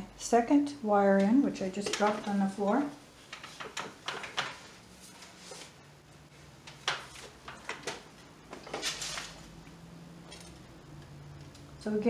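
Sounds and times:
knocks and rustling at loom: 1.2s - 4.9s, 6.6s - 9.4s
loom clattering: 1.8s - 4.8s.

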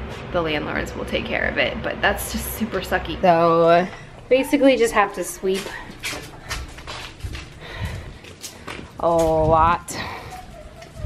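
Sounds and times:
low rumble: 3.9s - 8.2s
footsteps on concrete: 4.9s - 11.0s.

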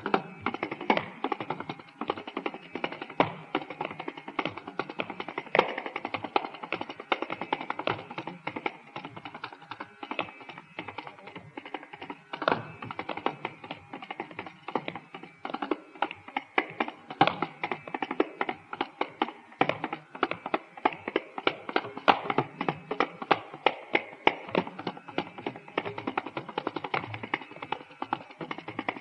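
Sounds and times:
hand drums playing fast strokes: 0.0s - 29.0s.

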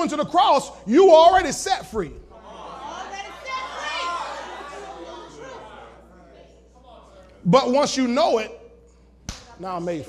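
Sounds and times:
congregation voices calling out: 0.0s - 8.8s.

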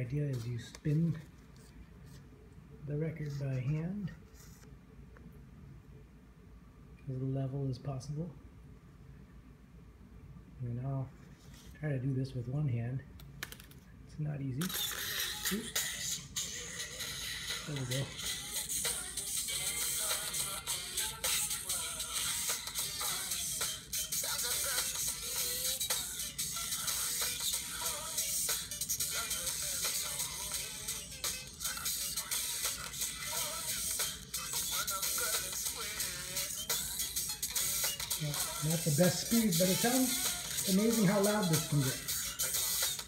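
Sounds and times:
low-fidelity record music: 0.0s - 8.4s, 10.5s - 43.0s
record hiss and crackle: 0.0s - 16.6s.

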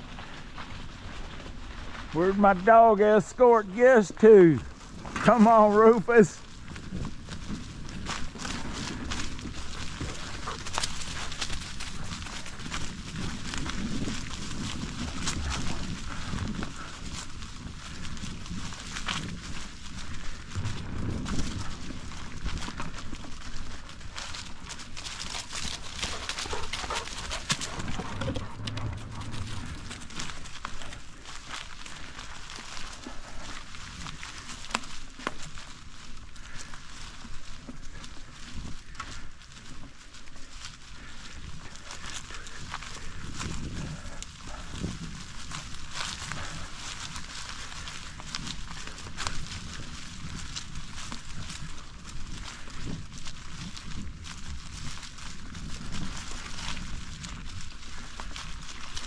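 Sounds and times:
bicycle tyres crunching dry leaves: 0.0s - 59.0s.

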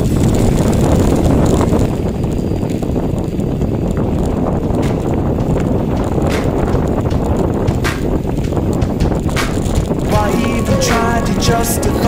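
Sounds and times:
bike rattling over rough ground: 0.0s - 10.1s
wind buffeting microphone: 0.0s - 10.1s.

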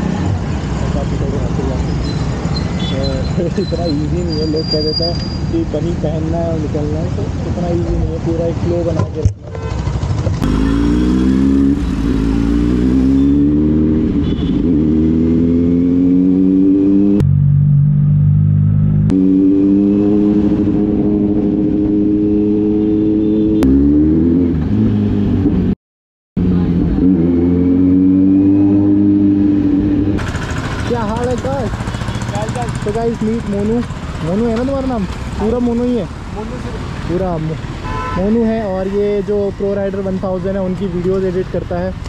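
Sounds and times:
motorcycle engine accelerating: 9.6s - 25.8s, 26.4s - 36.0s.

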